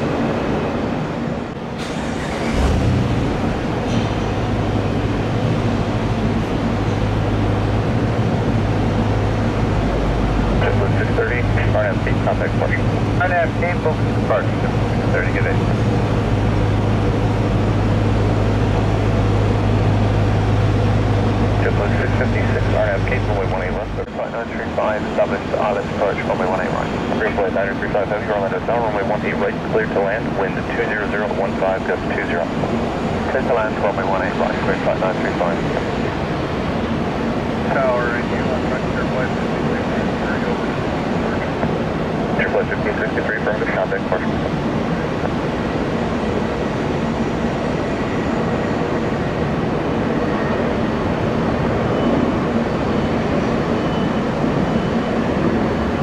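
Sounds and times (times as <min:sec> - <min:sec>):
aircraft drone: 0:00.0 - 0:56.0
indistinct voices: 0:01.8 - 0:20.1, 0:20.8 - 0:32.5, 0:33.3 - 0:36.0, 0:37.6 - 0:45.4.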